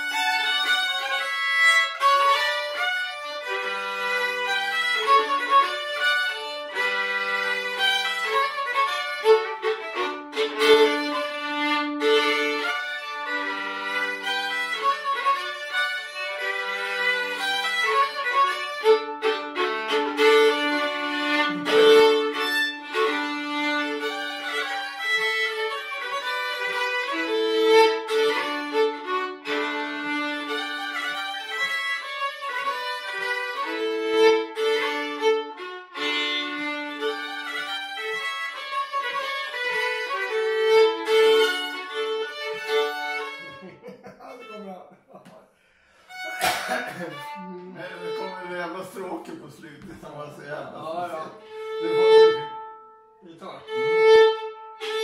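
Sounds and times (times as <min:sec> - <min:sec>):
two fiddles playing folk tune: 0:00.0 - 0:44.8, 0:45.7 - 0:55.0.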